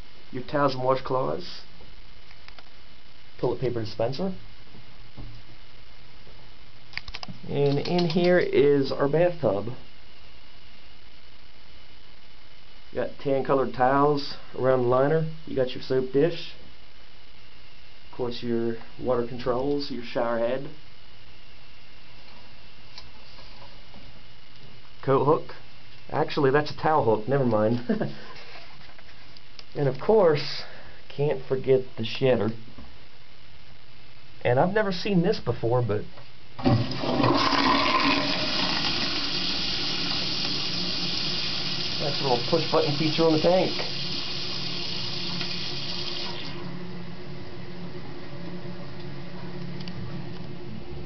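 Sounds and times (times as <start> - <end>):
background hiss: 0.0 - 51.0
toilet tank refilling: 36.6 - 46.7.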